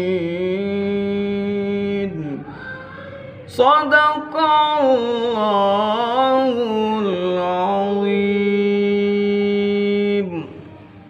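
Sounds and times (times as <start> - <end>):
man reciting melodically: 0.0 - 10.8.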